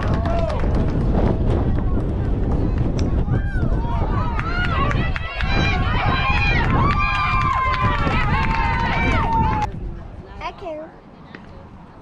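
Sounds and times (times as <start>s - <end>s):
spectators yelling and cheering: 3.1s - 9.8s.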